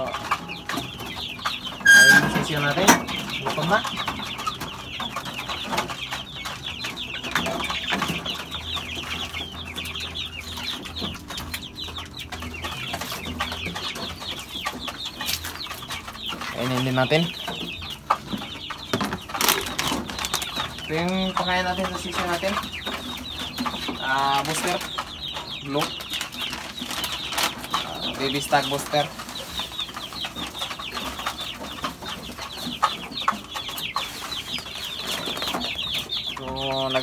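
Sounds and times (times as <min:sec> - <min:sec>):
chickens clucking: 0:00.0 - 0:37.0
chicks peeping: 0:00.0 - 0:37.0.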